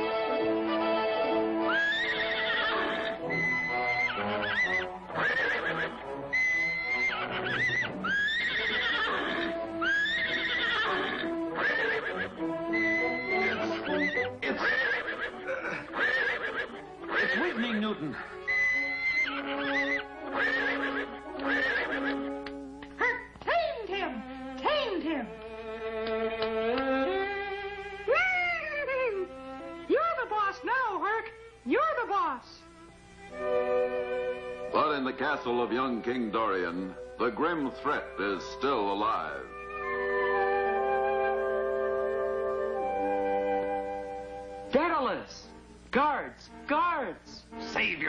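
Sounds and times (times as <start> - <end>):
orchestral background music: 0.0 - 8.1, 9.0 - 23.0, 23.8 - 28.1, 32.7 - 48.0
cartoon horse whinnies: 0.7 - 17.6, 18.3 - 22.4, 39.5 - 40.6.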